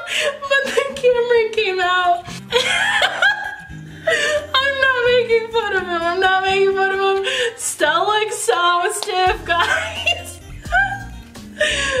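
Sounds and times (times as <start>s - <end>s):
low bass: 9.3s - 12.0s.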